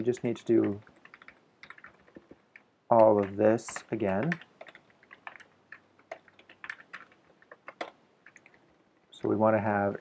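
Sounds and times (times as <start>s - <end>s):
typing on keyboard: 0.0s - 8.7s.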